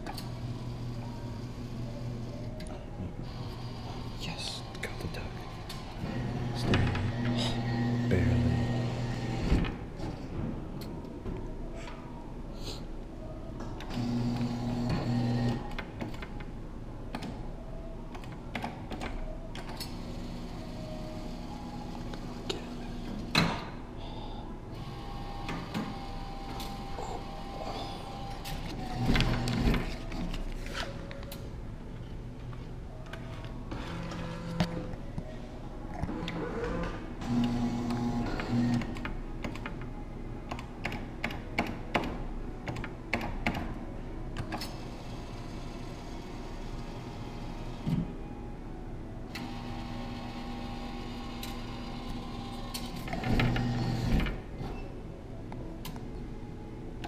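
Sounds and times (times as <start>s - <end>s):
arcade background noise: 0.0s - 57.0s.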